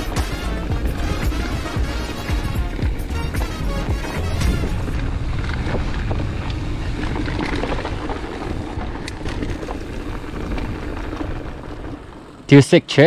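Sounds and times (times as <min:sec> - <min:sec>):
bike clicks and rattles: 0:00.0 - 0:13.0
tyres rolling on dirt: 0:00.0 - 0:13.0
wind on microphone: 0:03.8 - 0:12.0.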